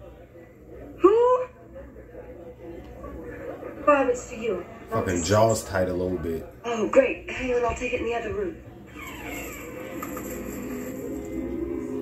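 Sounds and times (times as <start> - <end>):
low held soundtrack tones: 9.7 - 12.0.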